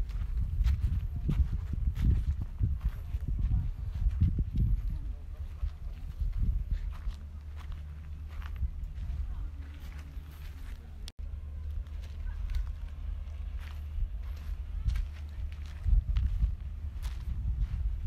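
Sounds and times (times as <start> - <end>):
footsteps on gravel: 0.0 - 18.0
wind rumble on microphone: 0.0 - 18.0.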